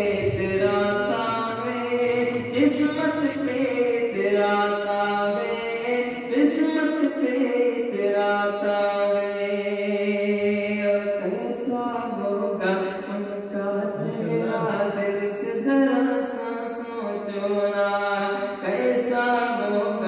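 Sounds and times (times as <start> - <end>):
man chanting: 0.0 - 20.0.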